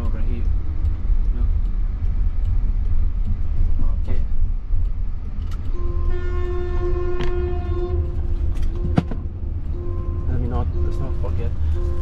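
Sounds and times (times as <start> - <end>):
road and tyre rumble: 0.0 - 12.0
steady horn-like tone: 5.7 - 9.0.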